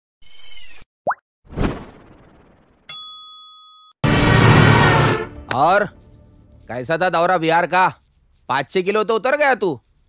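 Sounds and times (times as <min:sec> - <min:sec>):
bright bell-like ding: 0:02.9 - 0:04.0
whoosh: 0:04.0 - 0:06.2.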